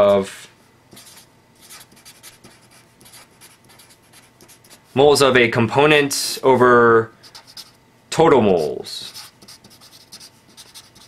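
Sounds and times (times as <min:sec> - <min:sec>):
marker writing on paper: 0:00.9 - 0:04.8, 0:07.3 - 0:07.8, 0:09.1 - 0:11.0.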